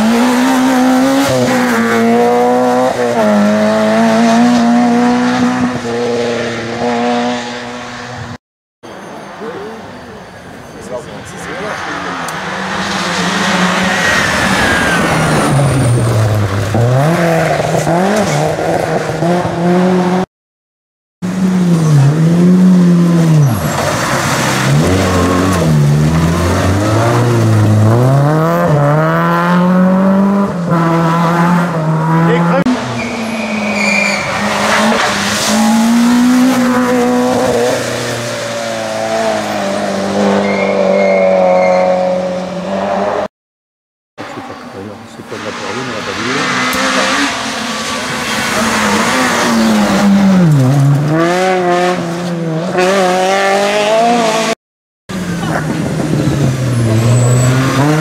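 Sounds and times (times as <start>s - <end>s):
rally car engines revving: 0.0s - 8.4s, 9.1s - 20.3s, 21.3s - 43.3s, 44.2s - 58.0s.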